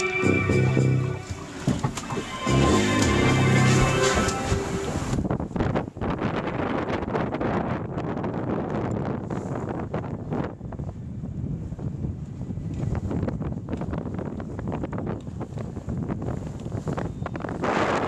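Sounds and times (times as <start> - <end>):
wind buffeting microphone: 0.1 - 18.0.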